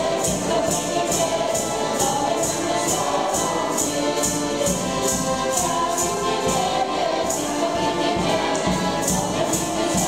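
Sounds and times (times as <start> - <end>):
group singing folk song: 0.0 - 10.0
music with steady beat: 0.0 - 10.0.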